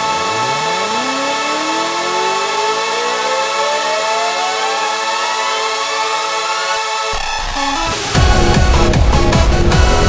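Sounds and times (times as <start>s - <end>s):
synth tone gliding upward: 0.0s - 8.2s
sustained synth chords: 0.0s - 10.0s.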